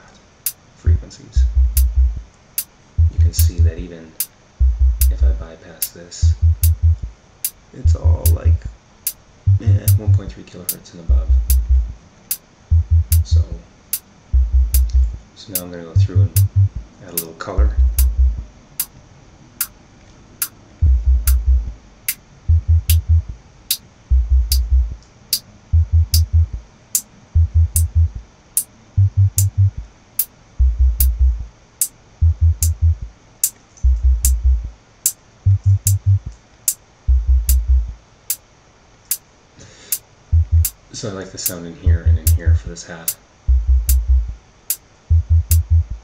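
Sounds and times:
deep bass notes: 0:00.9 - 0:02.3, 0:03.0 - 0:03.9, 0:04.6 - 0:05.5, 0:06.2 - 0:07.1, 0:07.8 - 0:08.7, 0:09.5 - 0:10.3, 0:11.1 - 0:12.0, 0:12.7 - 0:13.6, 0:14.3 - 0:15.2, 0:16.0 - 0:16.9, 0:17.6 - 0:18.5, 0:20.8 - 0:21.8, 0:22.5 - 0:23.4, 0:24.1 - 0:25.0, 0:25.6 - 0:26.6, 0:27.4 - 0:28.2, 0:28.9 - 0:29.8, 0:30.6 - 0:31.5, 0:32.2 - 0:33.1, 0:33.8 - 0:34.7, 0:35.4 - 0:36.3, 0:37.1 - 0:38.0, 0:40.3 - 0:40.7, 0:41.8 - 0:42.7, 0:43.5 - 0:44.4, 0:45.1 - 0:46.0
hi-hat ticking: 0:01.4 - 0:18.9, 0:20.4 - 0:38.4, 0:39.9 - 0:40.8, 0:41.4 - 0:46.0.

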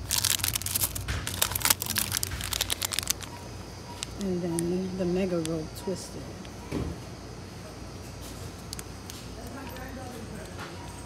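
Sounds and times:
plastic wrappers crinkling: 0:00.0 - 0:05.5.

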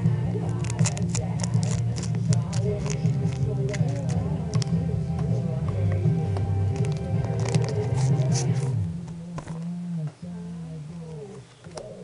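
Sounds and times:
background music: 0:00.0 - 0:09.0
foil wrapper crinkling: 0:00.5 - 0:04.7, 0:06.8 - 0:08.7.

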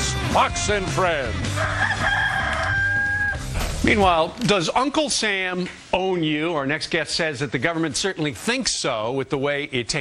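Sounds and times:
rooster crowing: 0:01.5 - 0:03.5.

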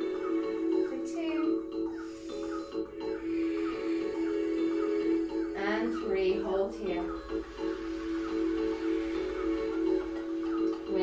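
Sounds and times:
soft sustained drone music: 0:00.0 - 0:11.0.

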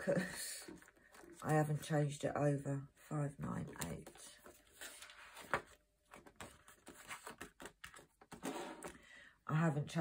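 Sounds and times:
binder pages rustling: 0:00.6 - 0:02.2, 0:03.4 - 0:09.0.

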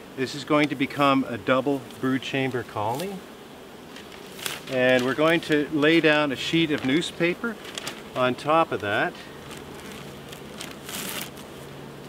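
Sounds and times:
honey bees humming: 0:00.0 - 0:12.0
newspaper rustling: 0:03.9 - 0:11.8.

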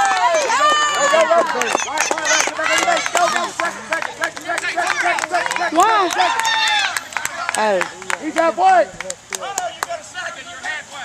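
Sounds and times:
people shouting excitedly: 0:00.0 - 0:07.5
short sharp claps: 0:00.0 - 0:10.1.

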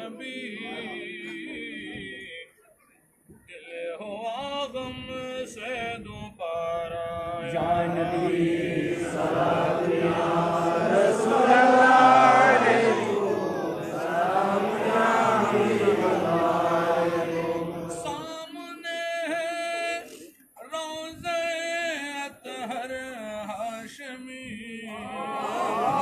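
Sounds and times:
single man chanting: 0:00.0 - 0:02.5, 0:03.5 - 0:26.0
men chanting in unison: 0:07.4 - 0:18.4, 0:24.8 - 0:26.0.

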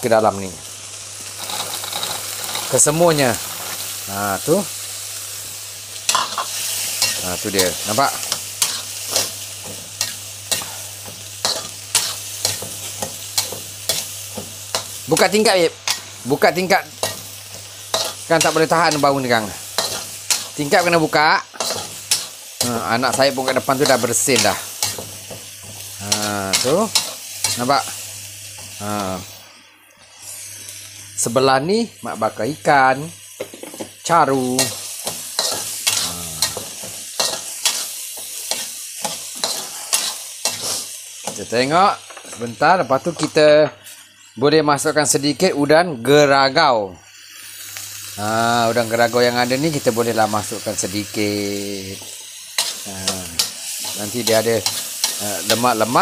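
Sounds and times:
berries sizzling in oil: 0:00.0 - 0:56.0
metal spatula scraping a wok: 0:06.1 - 0:16.4, 0:17.0 - 0:27.7, 0:34.6 - 0:41.0, 0:52.6 - 0:55.8.

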